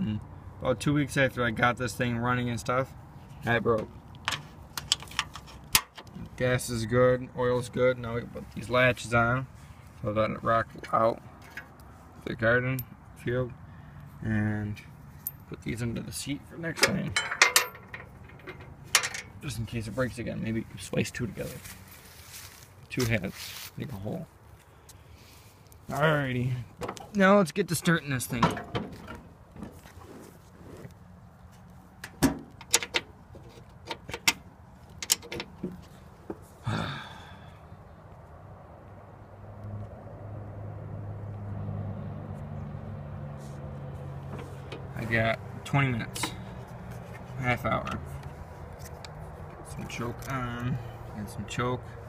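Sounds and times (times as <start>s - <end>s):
metallic clicks of hood latch: 16.8s - 19.4s, 32.0s - 35.8s
low engine hum: 34.4s - 52.0s.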